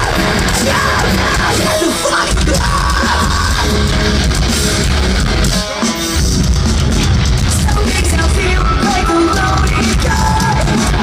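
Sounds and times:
live metal band playing: 0.0s - 11.0s.

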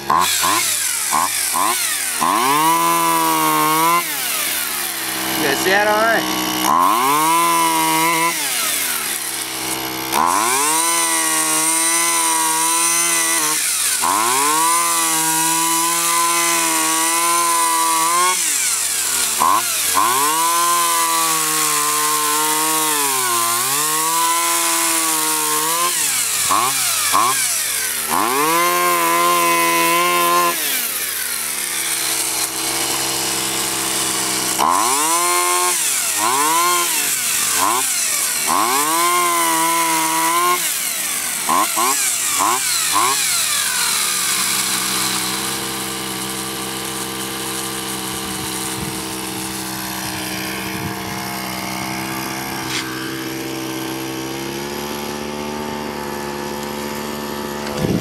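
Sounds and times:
pole saw engine revving: 0.0s - 58.0s.

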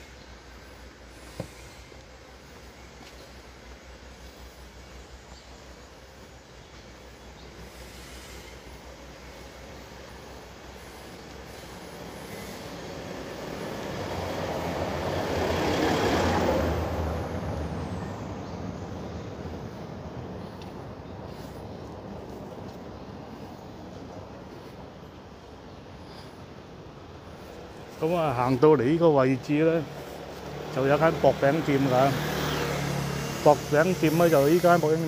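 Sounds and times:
low engine hum: 0.0s - 35.0s
small truck driving past: 10.7s - 22.2s, 27.6s - 35.0s.

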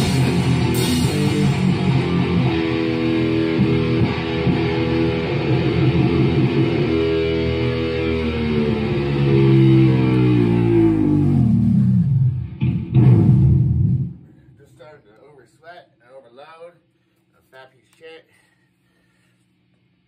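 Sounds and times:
drums playing: 0.0s - 4.0s
electric guitar playing held notes: 0.0s - 14.2s
loud guitar strum: 0.0s - 14.3s.

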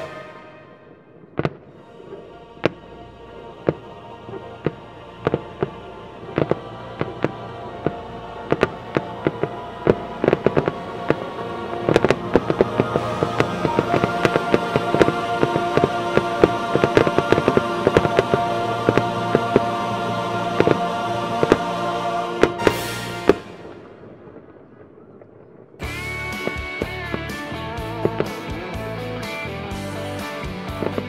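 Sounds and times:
fireworks bursting with sharp bangs: 0.0s - 3.0s, 3.6s - 28.9s, 30.4s - 31.0s
music playing: 0.0s - 23.9s, 25.8s - 31.0s.

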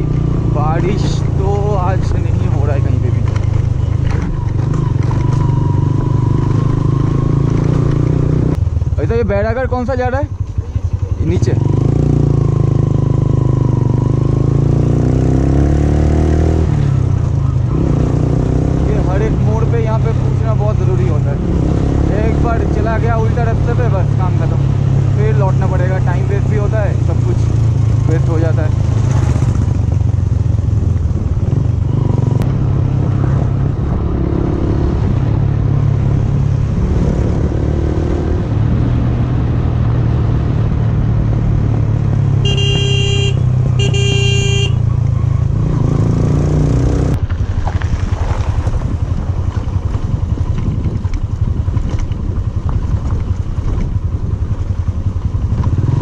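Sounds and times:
motorcycle engine running: 0.0s - 56.0s
motorcycle horn honks: 42.4s - 44.9s.

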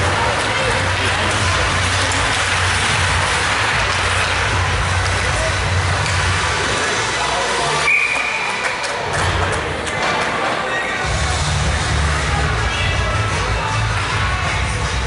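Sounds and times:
crowd din with voices: 0.0s - 15.0s
referee's whistle blast: 7.8s - 8.6s.

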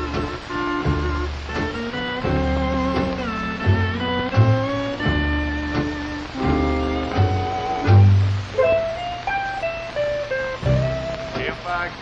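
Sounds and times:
steel guitar playing: 0.0s - 11.9s.

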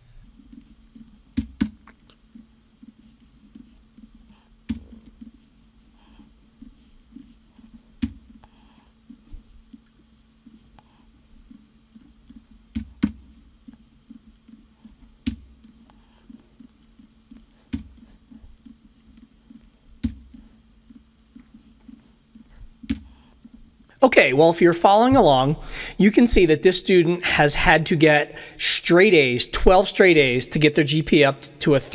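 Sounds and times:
low steady hum: 0.0s - 31.9s
computer mouse clicks: 11.5s - 23.7s.

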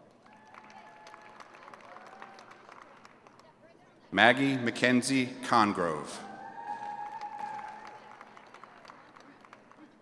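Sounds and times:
crowd applause: 0.0s - 3.5s, 5.9s - 10.0s
person cheering: 6.1s - 8.0s.

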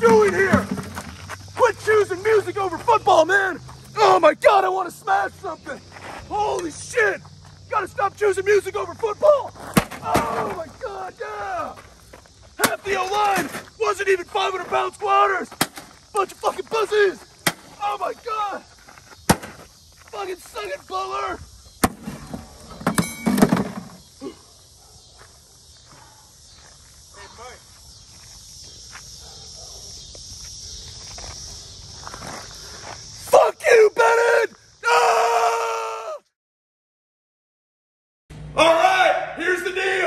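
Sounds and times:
man yelling: 0.0s - 0.7s, 1.6s - 11.8s, 12.6s - 18.7s, 20.1s - 21.4s, 33.2s - 36.3s, 38.6s - 40.0s
footsteps on gravel: 0.0s - 4.0s, 5.5s - 21.5s, 25.1s - 33.2s
tv smashing on gravel: 9.6s - 10.7s, 19.3s - 19.6s.

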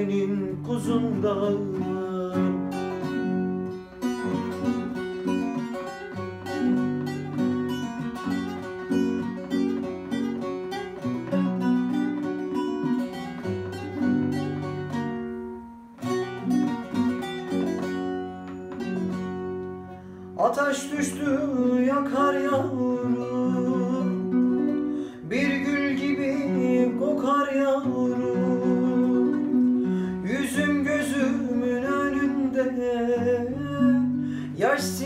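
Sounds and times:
acoustic guitar accompaniment: 0.0s - 35.0s
picked saz melody: 0.0s - 35.0s.

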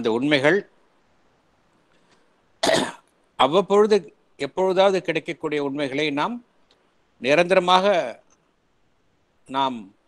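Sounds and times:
person speaking: 0.0s - 0.8s, 3.3s - 8.4s
person coughing: 2.6s - 3.1s.

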